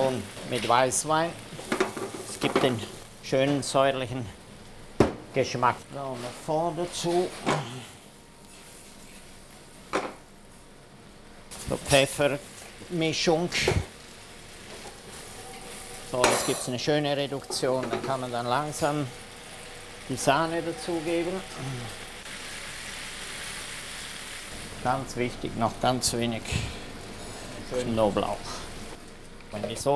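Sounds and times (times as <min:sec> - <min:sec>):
vegetables sizzling in a pan: 0:00.0 - 0:04.9, 0:11.5 - 0:29.4.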